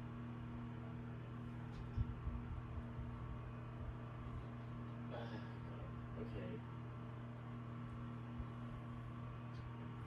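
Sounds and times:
mini fridge humming: 0.0s - 10.0s.

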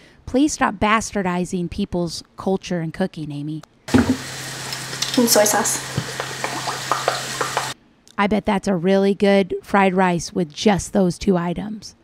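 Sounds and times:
food sizzling in skillet: 3.9s - 7.8s.

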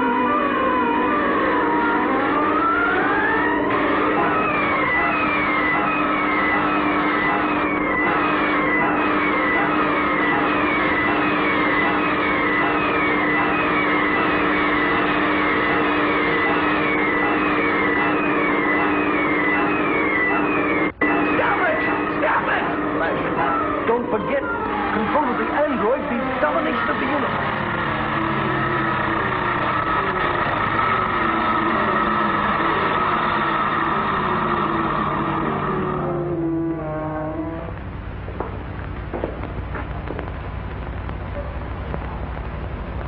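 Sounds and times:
rising electronic whine: 0.0s - 43.0s
siren-like electronic drone: 0.0s - 43.0s.

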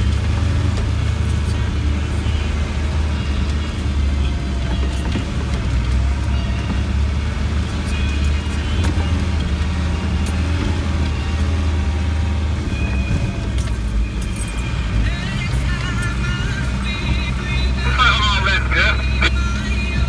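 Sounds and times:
engine drone from inside cab: 0.0s - 20.0s.

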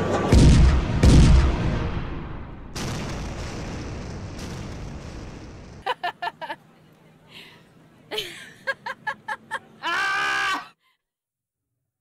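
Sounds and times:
long shrill cry: 9.8s - 10.8s.

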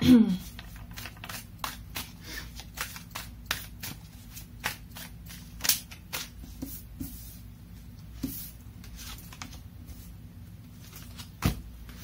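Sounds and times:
cards snapping and slapping: 0.7s - 6.3s.

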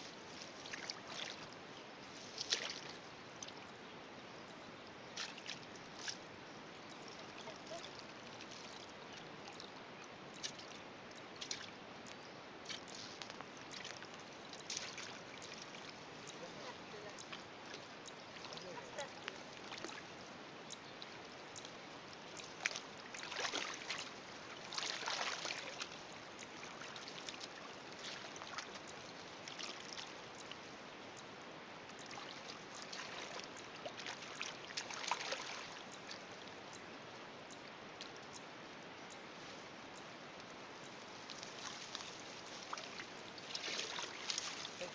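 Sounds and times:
water splashing and sloshing: 0.0s - 3.7s, 5.1s - 30.8s, 31.4s - 36.8s, 40.4s - 44.9s.

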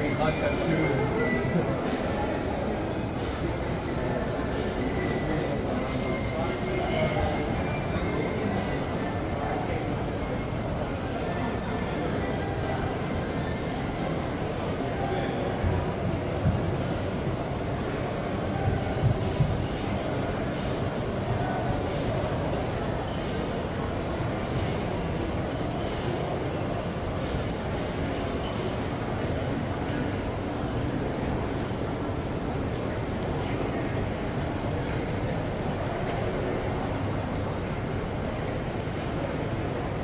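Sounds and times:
constant background hum: 0.0s - 40.0s
shopping mall background rumble: 0.0s - 40.0s.

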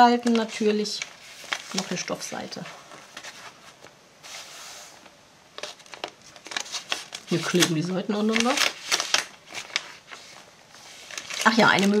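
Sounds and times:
paper page rustling: 0.1s - 12.0s.

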